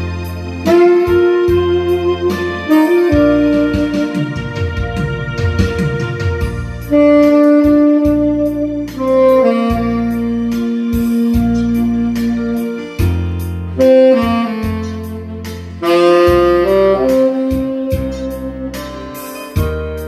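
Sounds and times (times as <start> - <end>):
backing track with bass: 0.0 - 20.0
tenor saxophone ballad melody: 0.0 - 20.0.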